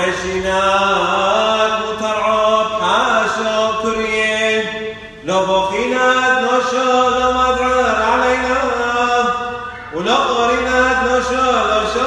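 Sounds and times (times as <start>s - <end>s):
voices chanting a hymn: 0.0s - 12.0s.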